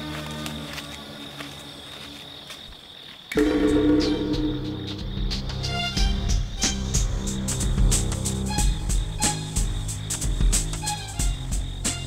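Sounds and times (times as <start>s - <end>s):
crickets chirping: 0.0s - 12.0s
loud music with low notes: 3.4s - 8.4s.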